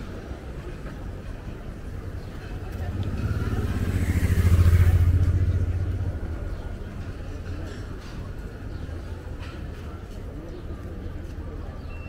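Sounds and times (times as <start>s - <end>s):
vehicle engine passing by: 2.4s - 7.4s.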